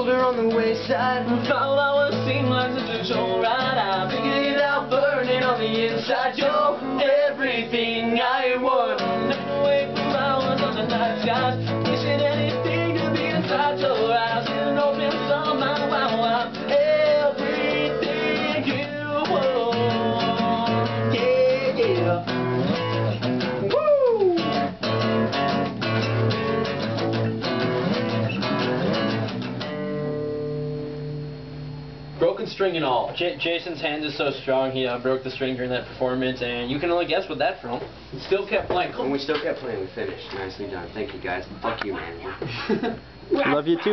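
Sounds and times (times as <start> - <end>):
wordless singing: 0.0 - 22.3
acoustic guitars strumming: 0.0 - 34.6, 36.9 - 43.9.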